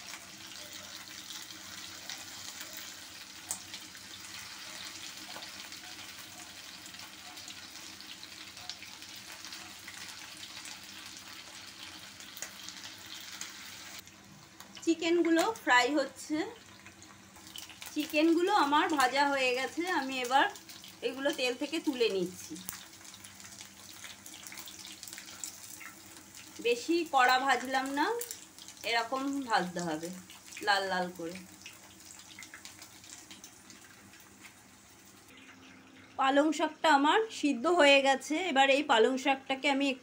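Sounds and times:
chicken deep-frying in oil: 0:00.0 - 0:37.6.

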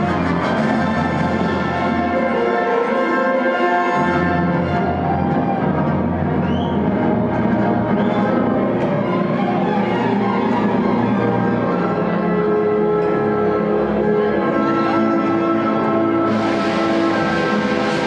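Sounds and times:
orchestral music with strings: 0:00.0 - 0:18.0.

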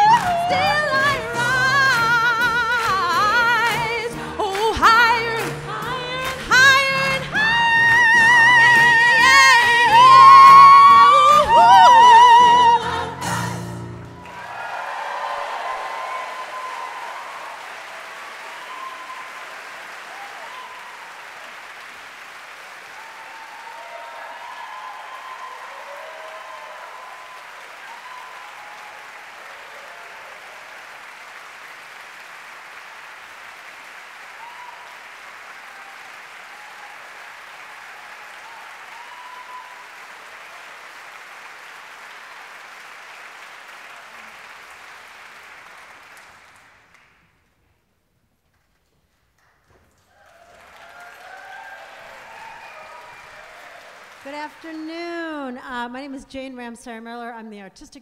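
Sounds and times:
large audience applauding: 0:00.0 - 0:47.7, 0:48.5 - 0:55.8
scattered cheers: 0:08.1 - 0:12.7, 0:14.0 - 0:21.6, 0:22.6 - 0:31.4, 0:34.2 - 0:41.1, 0:50.1 - 0:54.8.

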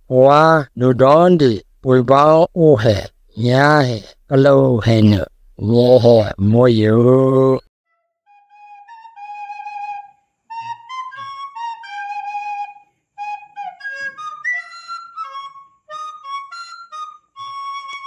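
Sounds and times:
solo flute melody: 0:07.9 - 0:18.0.

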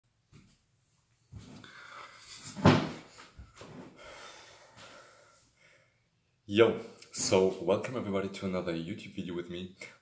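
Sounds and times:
rustling and shuffling: 0:00.2 - 0:04.0.

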